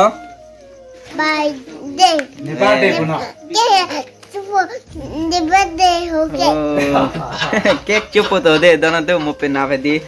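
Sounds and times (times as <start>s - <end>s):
young child singing: 1.1s - 7.1s.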